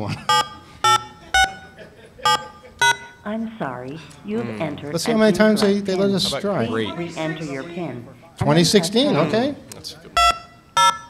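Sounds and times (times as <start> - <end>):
telephone keypad beeps: 0.3 - 3.2, 10.2 - 11.0.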